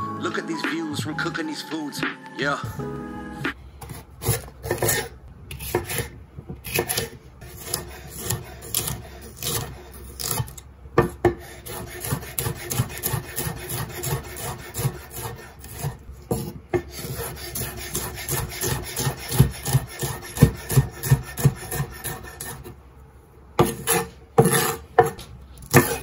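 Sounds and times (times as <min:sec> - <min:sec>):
knife chopping on wooden board: 0:03.8 - 0:22.6, 0:23.6 - 0:26.0.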